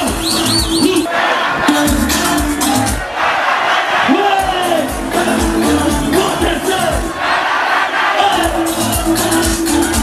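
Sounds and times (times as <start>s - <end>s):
large crowd noise: 0.0s - 10.0s
live concert music: 0.0s - 10.0s.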